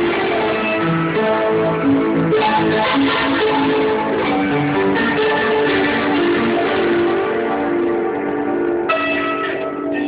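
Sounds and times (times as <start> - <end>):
ringing instrumental notes: 8.9 - 10.0.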